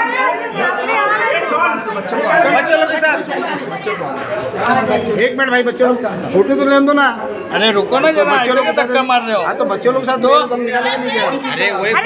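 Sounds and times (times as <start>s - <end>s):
crowd chatter at close range: 0.0s - 12.0s.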